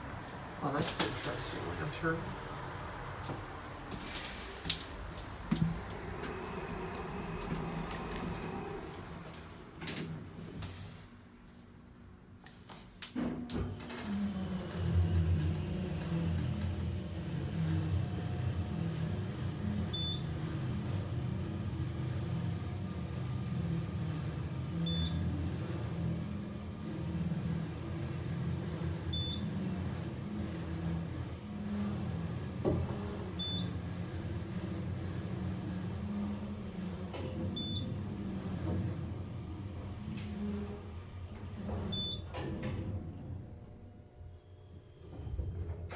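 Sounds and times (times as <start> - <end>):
elevator motor hum and rumble: 0.0 - 45.9.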